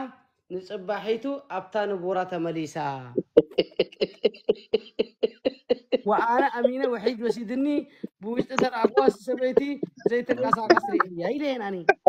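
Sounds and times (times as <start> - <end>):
person talking: 0.0 - 12.0
person making short vocal bursts: 8.1 - 11.0.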